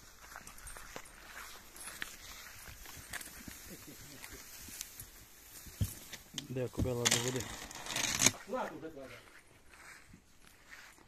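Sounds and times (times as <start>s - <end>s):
horse footsteps on grass: 0.0s - 11.0s.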